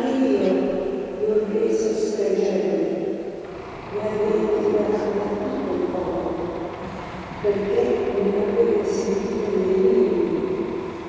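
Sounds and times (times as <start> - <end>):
woman chanting with echo: 0.0 - 3.0, 3.9 - 6.5, 7.4 - 10.8.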